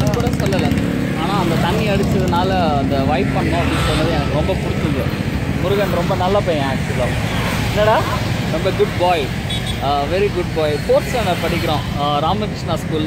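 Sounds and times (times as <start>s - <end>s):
low street rumble: 0.0s - 13.0s
voices talking: 0.0s - 13.0s.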